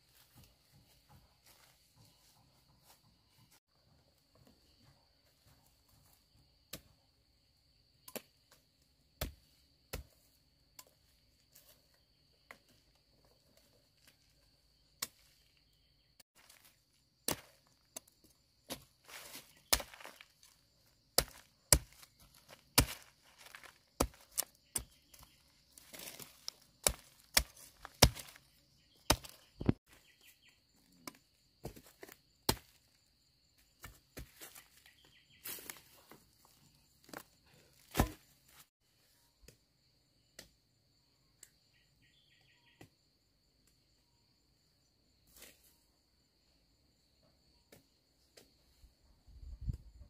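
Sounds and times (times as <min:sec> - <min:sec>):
machete chopping roots: 0:19.6 - 0:20.6, 0:21.2 - 0:29.8, 0:37.8 - 0:38.3.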